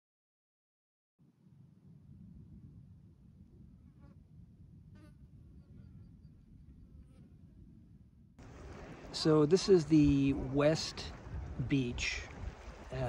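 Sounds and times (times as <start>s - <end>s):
wind rumble on microphone: 1.2s - 13.0s.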